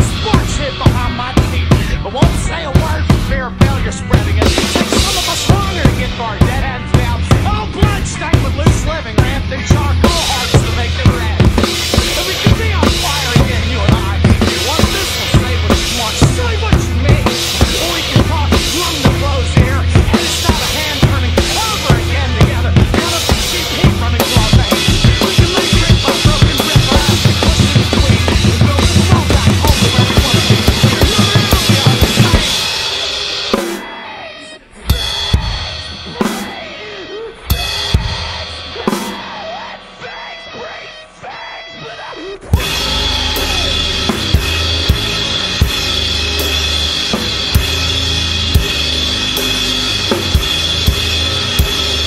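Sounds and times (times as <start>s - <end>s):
drum kits playing: 0.0s - 52.0s
heavy band recording: 0.0s - 52.0s.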